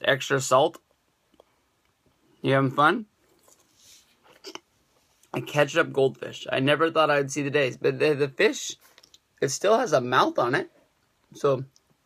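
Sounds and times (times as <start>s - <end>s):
faint soft rustle: 3.2s - 5.4s.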